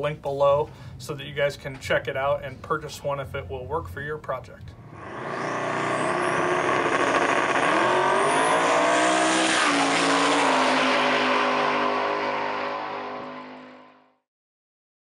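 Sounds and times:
race car engine at high revs: 0:04.8 - 0:14.0.

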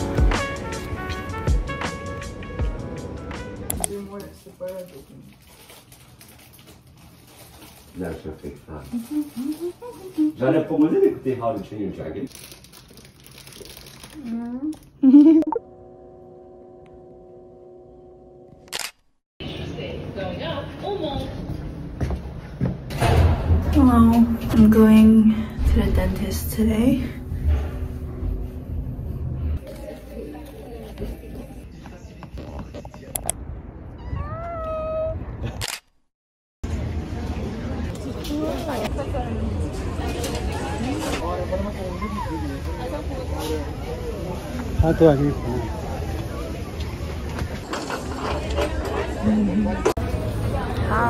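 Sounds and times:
paper wrapper crinkling: 0:04.0 - 0:10.4, 0:12.3 - 0:14.9
woman laughing: 0:08.9 - 0:10.4, 0:15.0 - 0:15.6
meow-like call: 0:34.0 - 0:35.2
steady background noise: 0:36.6 - 0:51.0.

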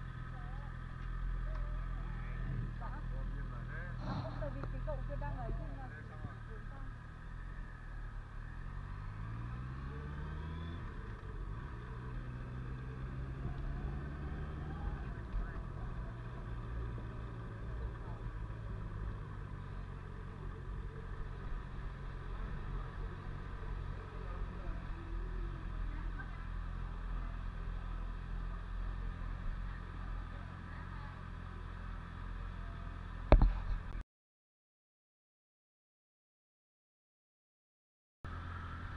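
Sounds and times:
motorbike engine pulling away: 0:00.0 - 0:33.9, 0:38.3 - 0:38.9.

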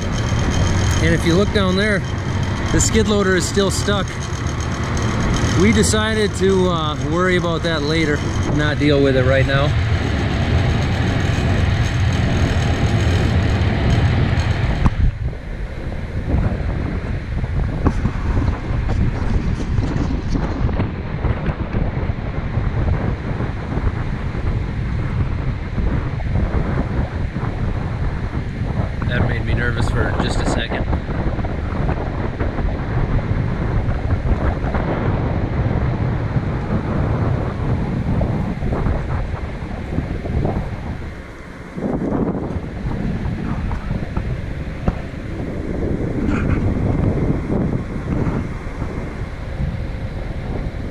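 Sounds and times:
wind buffeting microphone: 0:00.0 - 0:50.9.

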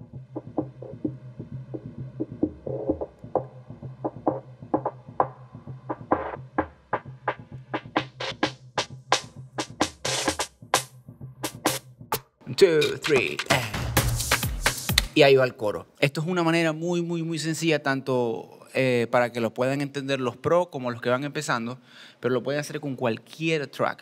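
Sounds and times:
steady bass line: 0:00.0 - 0:10.4
drum machine beat: 0:00.0 - 0:15.2.

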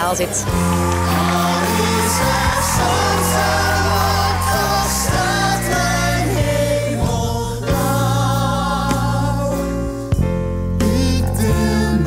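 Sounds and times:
ensemble singing with orchestra: 0:00.3 - 0:10.2, 0:10.8 - 0:12.0.

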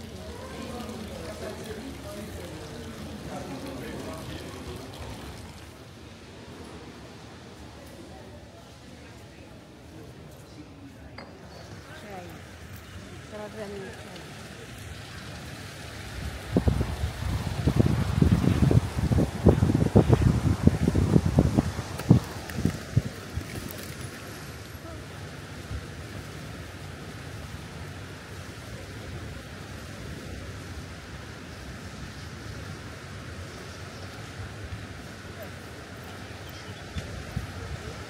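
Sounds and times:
river running over rocks: 0:00.0 - 0:10.6, 0:11.5 - 0:38.0
wind buffeting microphone: 0:15.6 - 0:24.5, 0:25.4 - 0:38.0.

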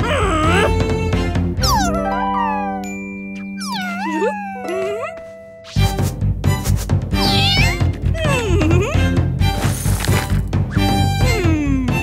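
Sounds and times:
background music of sustained notes: 0:00.0 - 0:12.0
cartoon cat meowing: 0:01.6 - 0:02.9, 0:03.6 - 0:05.2, 0:07.2 - 0:08.6.

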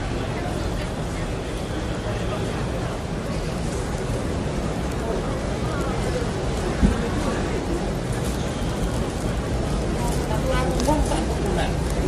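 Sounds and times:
airport concourse background noise: 0:00.0 - 0:12.0
faint indistinct voices: 0:00.0 - 0:12.0.

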